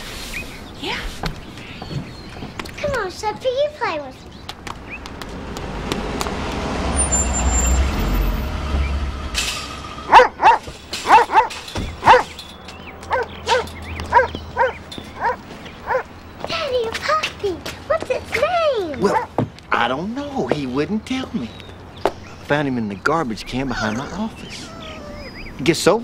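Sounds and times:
car engine and tyre rumble: 0:04.5 - 0:17.9
large dog barking: 0:10.1 - 0:12.4, 0:13.0 - 0:16.1, 0:19.0 - 0:19.4.

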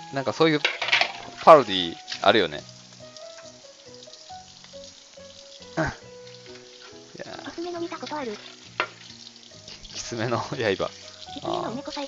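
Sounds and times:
food bubbling and sizzling in pan: 0:00.0 - 0:12.0.

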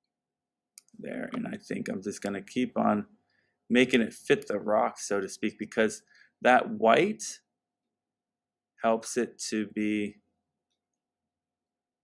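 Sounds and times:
person speaking: 0:00.8 - 0:03.1, 0:03.7 - 0:07.4.

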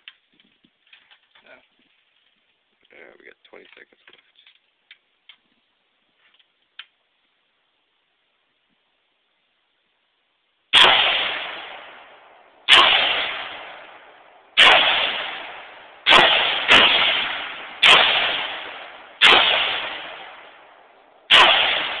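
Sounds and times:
rifle shots with echo: 0:10.7 - 0:22.0.

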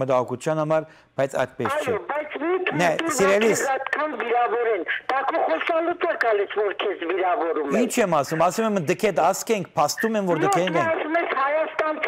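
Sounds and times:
person talking over telephone: 0:01.5 - 0:12.0.

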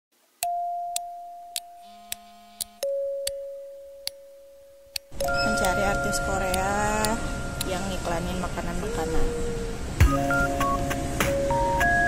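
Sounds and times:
two-note ding-dong chime: 0:00.4 - 0:08.7
sharp ticks: 0:01.0 - 0:03.4, 0:04.9 - 0:07.8.

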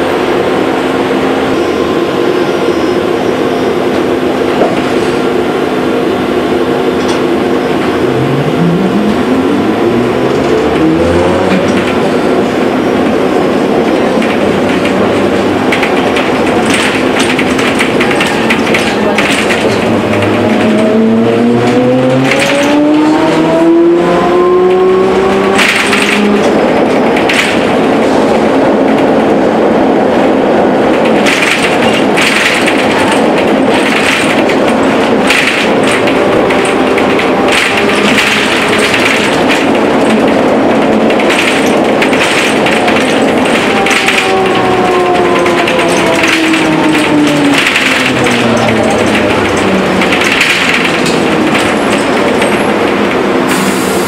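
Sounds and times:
bus body rattles: 0:00.0 - 0:54.0
bus running noise: 0:00.0 - 0:54.0.

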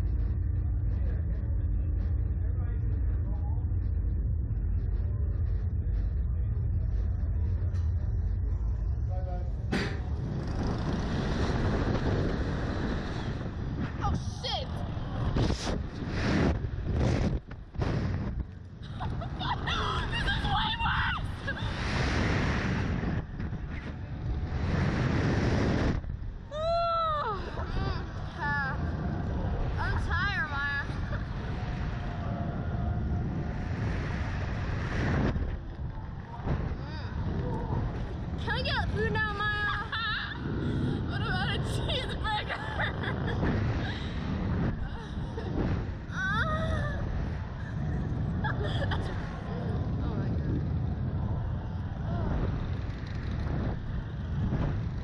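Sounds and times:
loud rushing wind: 0:09.4 - 0:55.0.

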